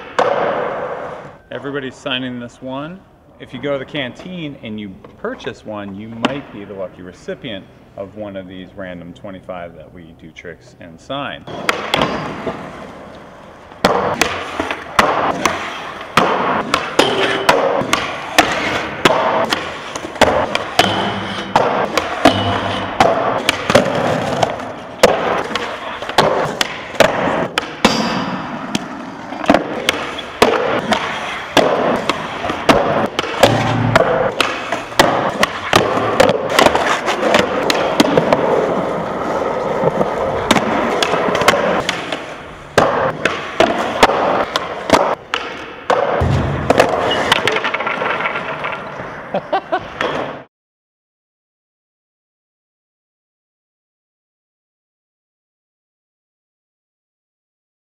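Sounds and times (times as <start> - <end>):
skateboard pops and landings: 0.0 - 1.2, 11.5 - 12.7, 13.8 - 48.8
skateboards rolling on concrete: 11.5 - 17.0, 17.6 - 22.2, 22.9 - 27.8, 34.0 - 50.5.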